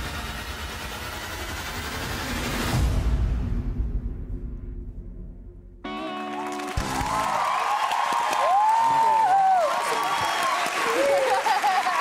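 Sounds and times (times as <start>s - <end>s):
audience applauding and cheering: 5.9s - 12.0s
drawn-out cheer: 6.2s - 12.0s.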